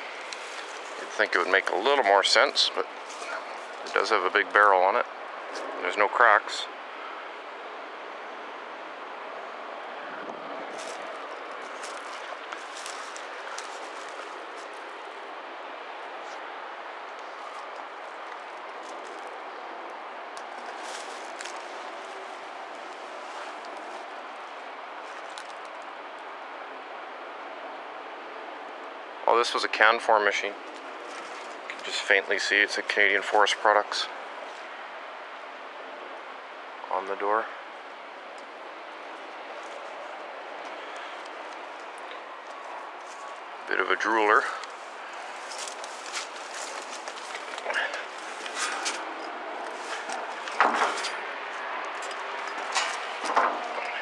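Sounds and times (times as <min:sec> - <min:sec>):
faint crackles: 0:00.0 - 0:06.0, 0:10.2 - 0:25.9, 0:37.3 - 0:54.0
outdoor background noise: 0:00.0 - 0:54.0.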